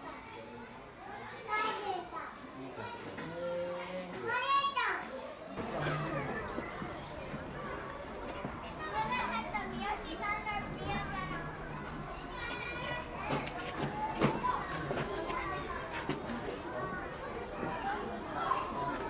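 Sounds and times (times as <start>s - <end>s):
children chattering and calling: 0.0s - 19.0s.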